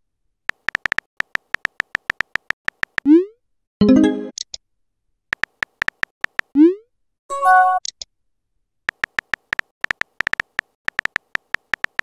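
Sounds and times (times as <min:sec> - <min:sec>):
keyboard typing clicks: 0:00.5 - 0:03.1, 0:05.3 - 0:06.6, 0:08.9 - 0:12.0.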